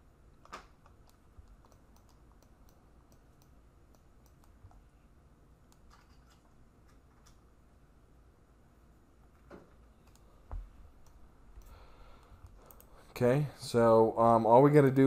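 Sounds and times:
mouse and keyboard clicks: 0.4 - 4.8.

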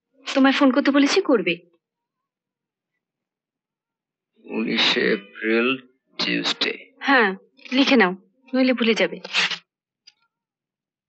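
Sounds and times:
person speaking: 4.5 - 6.9, 8.7 - 9.6.

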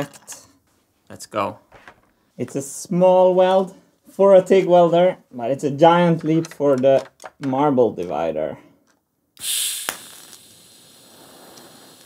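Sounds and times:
welding arc hissing: 9.4 - 12.0.

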